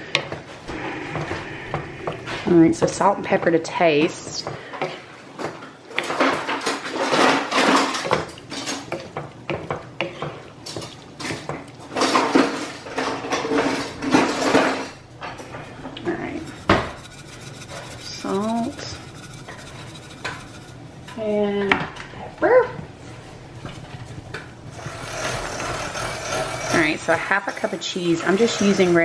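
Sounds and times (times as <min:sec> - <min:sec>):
wooden spoon scraping skillet: 0:10.0 - 0:22.0, 0:23.2 - 0:29.0.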